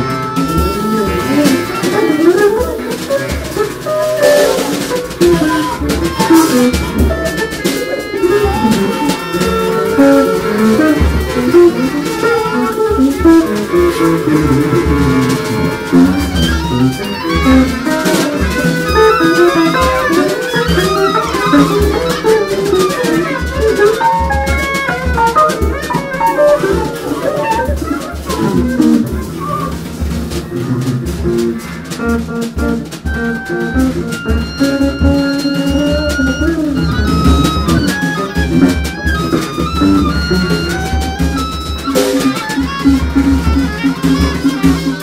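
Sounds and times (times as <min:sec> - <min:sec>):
busy drum hits: 0:00.0 - 0:45.0
long held woodwind notes: 0:00.0 - 0:45.0
small jazz group playing: 0:00.0 - 0:45.0.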